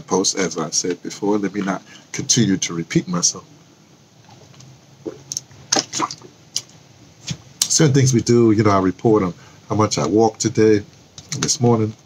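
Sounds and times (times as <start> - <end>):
man swallowing: 4.2 - 6.7.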